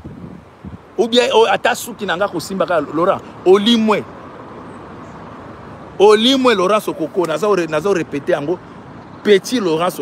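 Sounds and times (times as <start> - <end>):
distant road traffic hum: 0.0 - 10.0.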